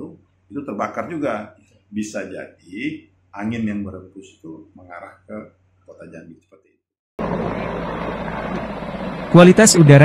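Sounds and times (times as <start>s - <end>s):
helicopter rotor and engine: 7.2s - 10.0s.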